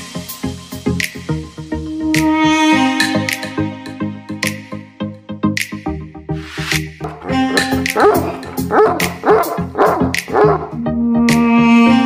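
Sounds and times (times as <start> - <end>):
background music with beat: 0.0 - 12.0
dog barking: 7.1 - 10.8.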